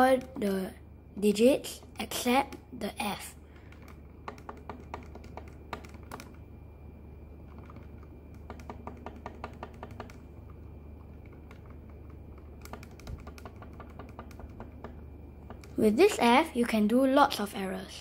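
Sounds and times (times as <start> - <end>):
calculator keys clicking: 3.5 - 6.4, 7.4 - 15.8.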